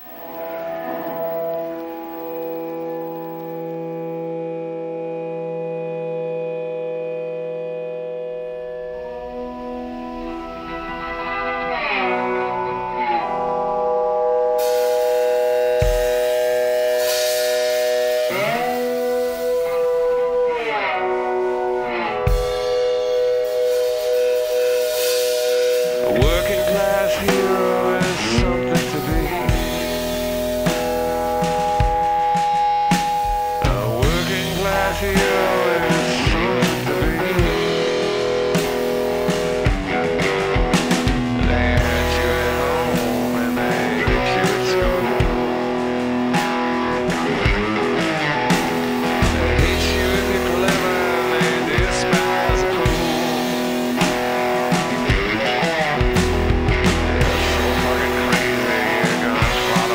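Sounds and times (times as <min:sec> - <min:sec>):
drums: 0:00.0 - 0:59.9
rock band playing: 0:00.0 - 0:59.9
slide electric guitar: 0:00.0 - 0:59.9.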